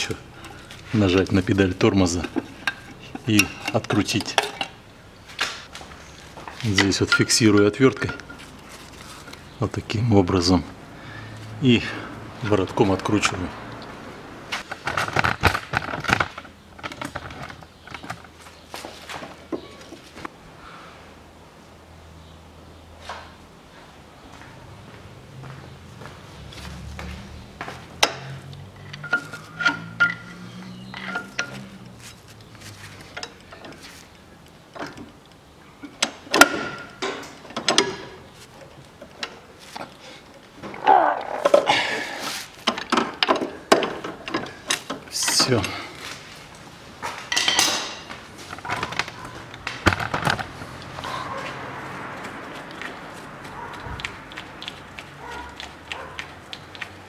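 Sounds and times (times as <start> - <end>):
hand tools clinking on metal: 0.0 - 4.8, 6.6 - 8.5, 28.0 - 32.2, 47.3 - 49.6.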